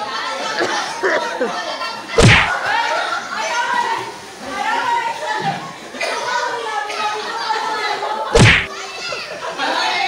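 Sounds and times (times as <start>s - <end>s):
group voices and laughter: 0.0s - 4.8s, 5.6s - 10.0s
loud thump: 2.2s - 2.5s, 8.4s - 8.7s.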